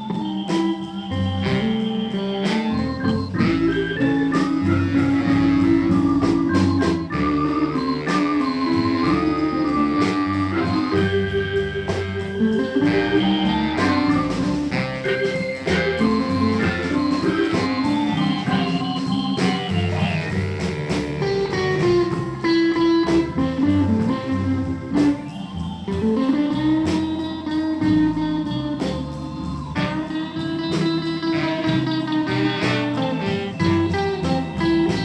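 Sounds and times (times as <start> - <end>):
live band music: 0.0 - 35.0
organ chords and runs: 0.0 - 35.0.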